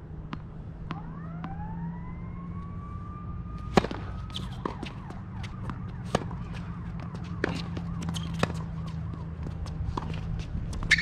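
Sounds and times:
tennis ball bouncing: 0.2s - 1.6s, 3.6s - 11.0s
siren-like wail: 0.9s - 10.1s
racket hitting ball: 3.6s - 11.0s
shoes on hard court: 3.7s - 11.0s.

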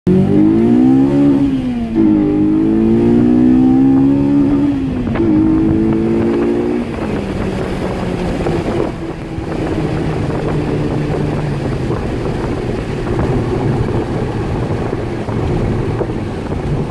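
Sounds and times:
car engine accelerating hard: 0.1s - 16.9s
road and wind noise: 0.1s - 16.9s.

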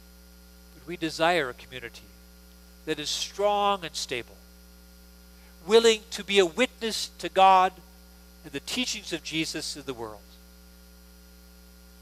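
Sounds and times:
electrical mains hum: 0.0s - 12.0s
man speaking: 0.8s - 2.0s, 2.9s - 4.4s, 5.6s - 7.8s, 8.4s - 10.3s.

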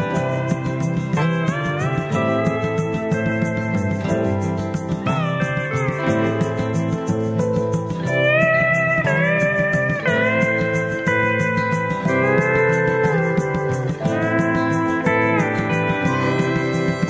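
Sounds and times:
country band beat: 0.0s - 17.0s
steel guitar sliding: 14.0s - 17.0s.

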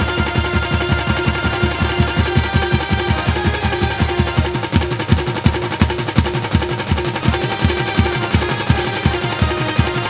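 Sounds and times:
fast drum beats: 0.0s - 10.0s.

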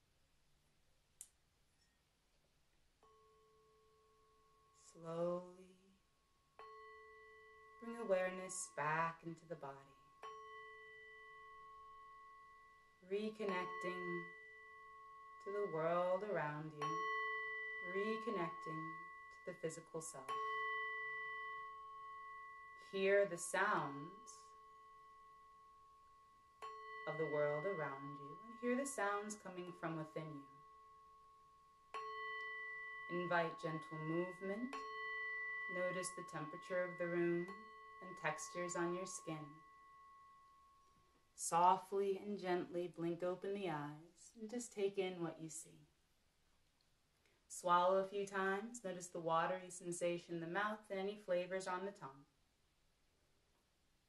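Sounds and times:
faint ringing tone: 3.0s - 8.6s, 9.3s - 41.3s.

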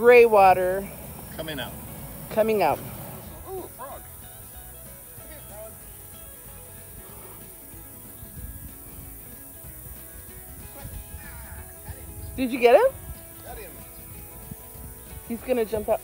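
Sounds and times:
faint steady music: 0.0s - 16.0s
faint voices and laughs: 3.0s - 16.0s.

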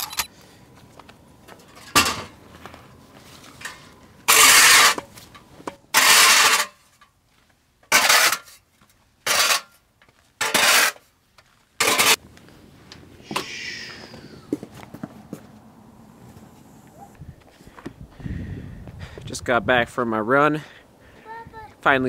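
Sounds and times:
snow shovel scraping concrete: 4.3s - 5.1s, 5.9s - 6.9s, 7.9s - 8.6s, 9.2s - 9.8s, 10.4s - 11.1s, 11.8s - 12.2s.

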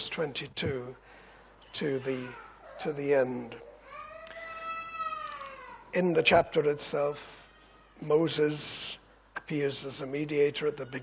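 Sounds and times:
high-pitched wailing cry: 3.6s - 5.9s.

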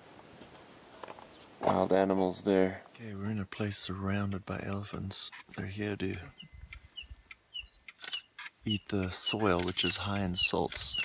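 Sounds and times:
bird chirping: 4.7s - 11.0s.

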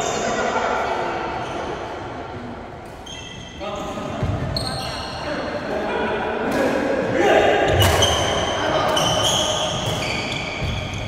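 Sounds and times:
shoes squeaking on floor: 3.0s - 5.2s, 7.7s - 11.0s
rackets hitting shuttlecock: 7.7s - 11.0s.

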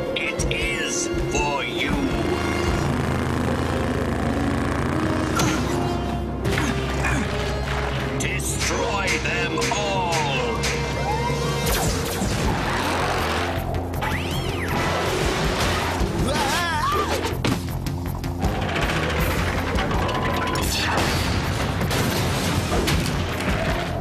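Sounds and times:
sweeping pitched effects: 0.0s - 6.5s
cartoon background music: 0.0s - 24.0s.

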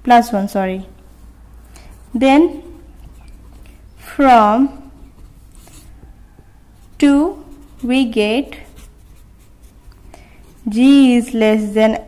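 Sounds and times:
pen scratching on paper: 1.8s - 11.2s
person speaking: 1.9s - 6.0s, 6.8s - 9.8s, 10.4s - 12.0s.

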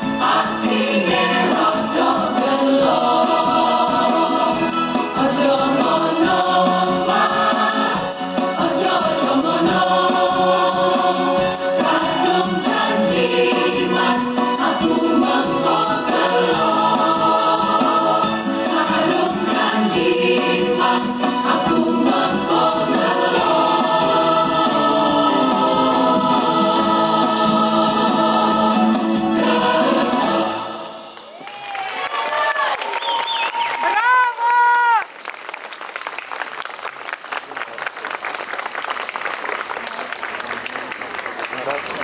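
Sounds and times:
women's choir singing: 0.0s - 31.2s.

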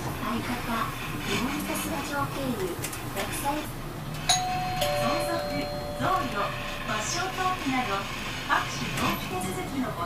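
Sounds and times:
two-note electronic chime: 4.3s - 7.1s.

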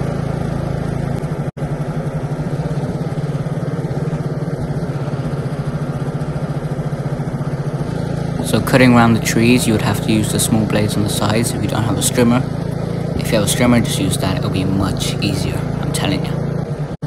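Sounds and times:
ride-on mower engine running: 0.0s - 17.0s.

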